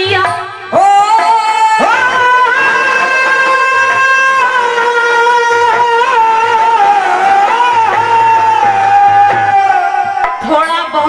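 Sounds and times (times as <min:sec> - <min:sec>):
musical accompaniment: 0:00.0 - 0:11.0
person singing devotional song: 0:00.0 - 0:11.0.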